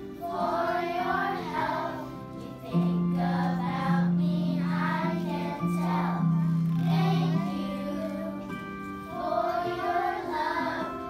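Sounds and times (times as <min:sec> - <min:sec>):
children singing in unison: 0:00.0 - 0:11.0.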